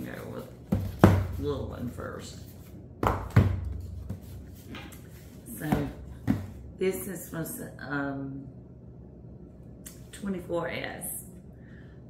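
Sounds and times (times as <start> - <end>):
box thumping on countertop: 5.7 - 6.6.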